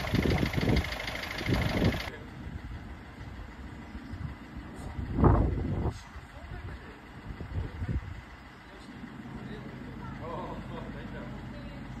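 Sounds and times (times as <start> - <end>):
van engine idling: 0.0 - 12.0.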